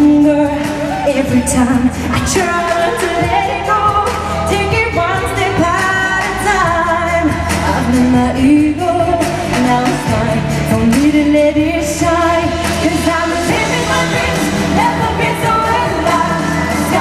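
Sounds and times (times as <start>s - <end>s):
pop backing music: 0.0s - 17.0s
woman singing into a microphone: 0.0s - 17.0s.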